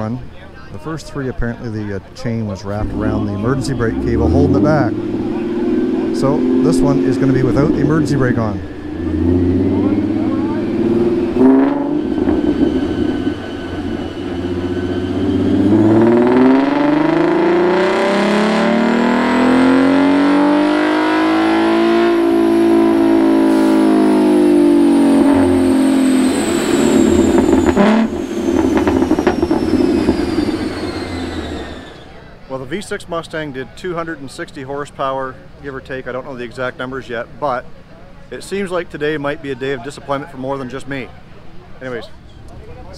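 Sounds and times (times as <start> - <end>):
car engine revving: 2.2 - 32.4
thin high whine: 2.8 - 18.7, 21.3 - 32.2.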